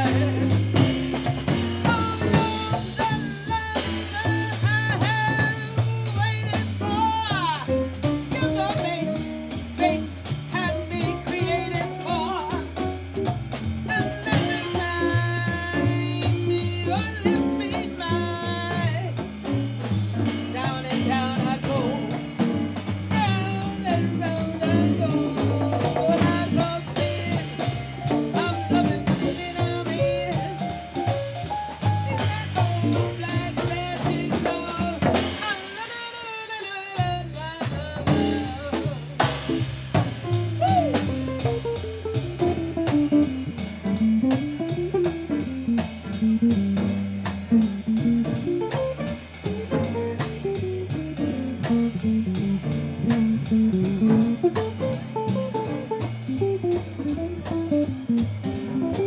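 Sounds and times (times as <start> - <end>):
woman singing: 0.0 - 12.9, 13.8 - 19.2, 20.2 - 22.4, 23.1 - 31.1, 31.7 - 39.3, 40.4 - 41.2
bass line: 0.0 - 35.9, 36.9 - 59.0
drum kit: 0.0 - 59.0.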